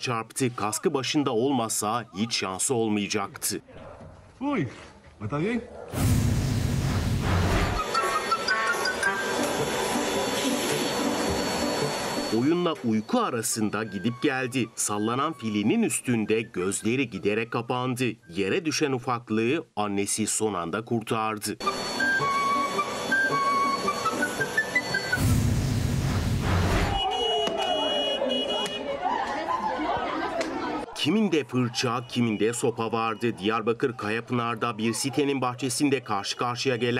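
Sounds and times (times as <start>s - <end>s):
bass-heavy transition sound: 6.0s - 7.8s, 25.2s - 27.0s
loud rushing noise: 6.0s - 8.0s, 25.1s - 27.0s
light melodic music: 7.8s - 17.6s, 21.6s - 25.2s
street brawl: 26.4s - 30.9s
mixed background noise: 26.7s - 36.9s
people shouting and chattering: 26.9s - 36.9s.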